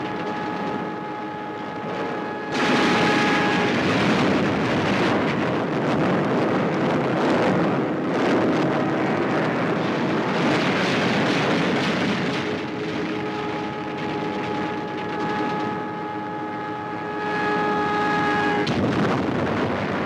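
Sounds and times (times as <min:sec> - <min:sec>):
aircraft engines roaring: 0:00.0 - 0:20.0.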